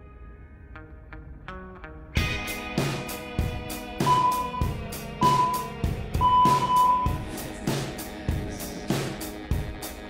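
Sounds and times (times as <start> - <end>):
background music with steady beat: 0.7 - 10.0
electronic timer beeps: 4.1 - 7.2.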